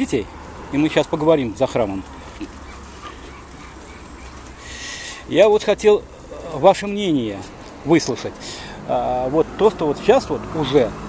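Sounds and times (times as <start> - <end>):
low rumble of city street: 0.0 - 11.0.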